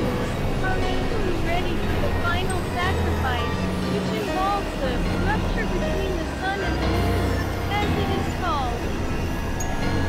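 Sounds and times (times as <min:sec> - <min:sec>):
low synthesizer drone: 0:00.0 - 0:10.0.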